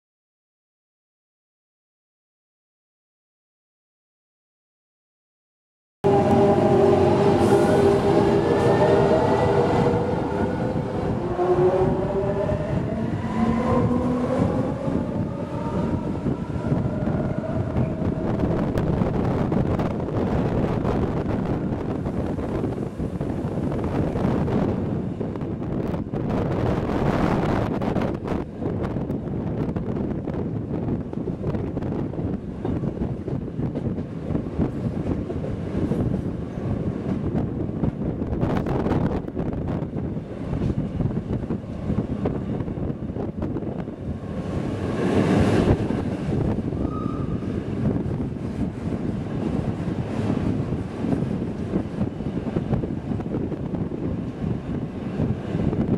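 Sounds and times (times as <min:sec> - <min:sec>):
train rumble: 0:06.0 - 0:55.9.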